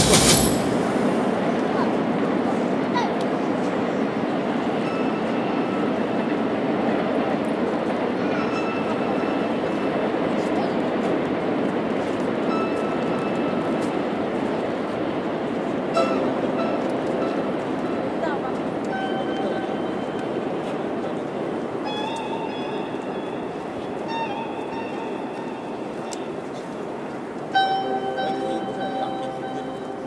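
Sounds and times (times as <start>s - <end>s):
short sharp sound: 0.0s - 1.3s
murmur of outdoor crowd: 0.0s - 30.0s
faint held high tones: 27.5s - 30.0s.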